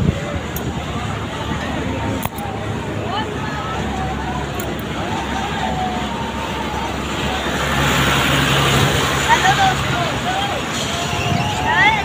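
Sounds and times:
ride machinery humming: 0:00.0 - 0:12.0
rushing noise: 0:00.0 - 0:12.0.

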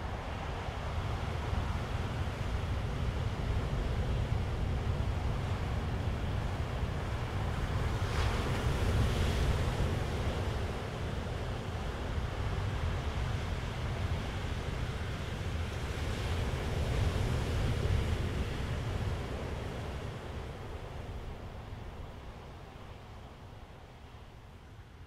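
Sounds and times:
sea surf: 0:00.0 - 0:23.2
wind: 0:00.0 - 0:25.0.

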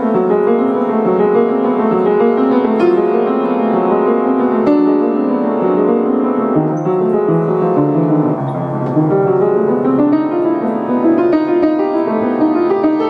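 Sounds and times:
piano playing slow passage: 0:00.0 - 0:13.0.

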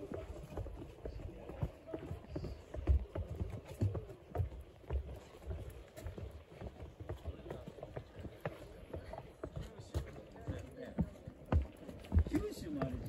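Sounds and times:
footsteps on wooden steps: 0:00.0 - 0:13.0.

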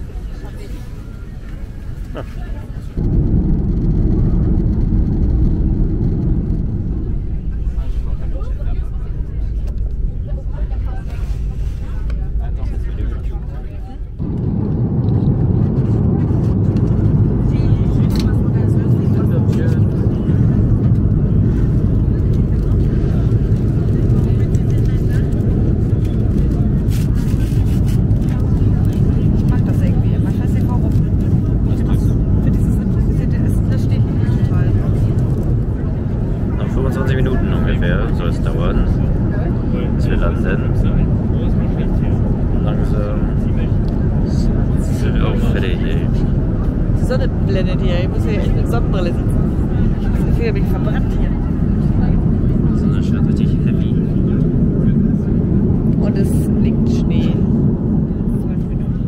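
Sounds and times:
airliner cabin rumble: 0:00.0 - 0:59.0.

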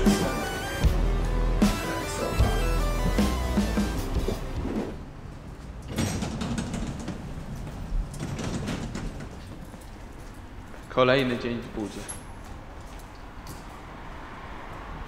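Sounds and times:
background music: 0:00.0 - 0:05.0
cabin noise: 0:03.0 - 0:12.8.

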